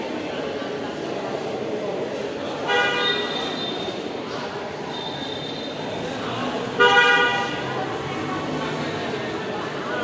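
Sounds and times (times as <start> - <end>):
hubbub of voices: 0.0 - 10.0
vehicle horns honking: 2.7 - 3.8, 6.8 - 7.7.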